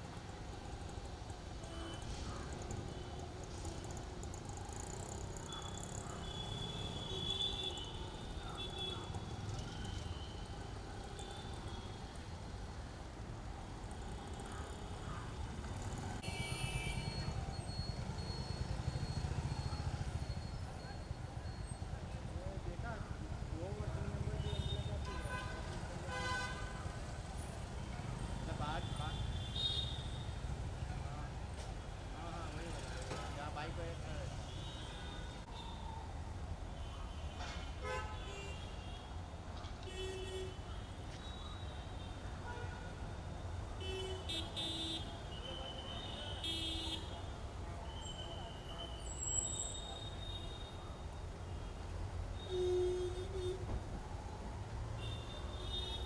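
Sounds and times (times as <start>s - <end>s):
road traffic rumble: 0.0s - 56.0s.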